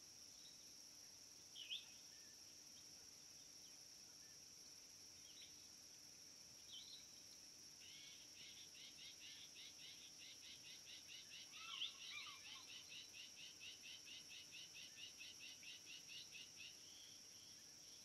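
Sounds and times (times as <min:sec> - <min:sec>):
high insect drone: 0:00.0 - 0:18.0
rapid repeated chirping call: 0:07.9 - 0:16.8.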